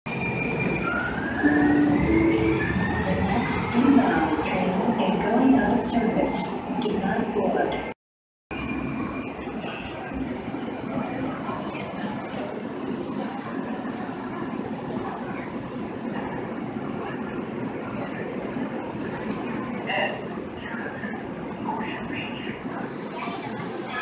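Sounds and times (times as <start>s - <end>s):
light-rail train rumbling: 0.1s - 7.9s, 8.5s - 24.0s.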